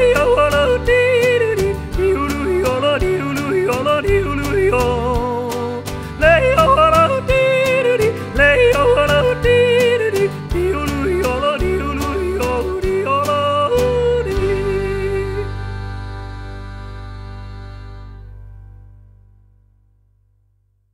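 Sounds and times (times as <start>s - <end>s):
country instrumental backing: 0.0s - 19.3s.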